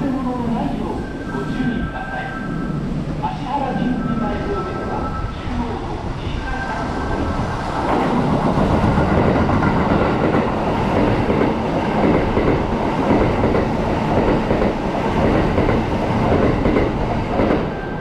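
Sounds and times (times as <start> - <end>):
train passing at speed: 0.0 - 18.0.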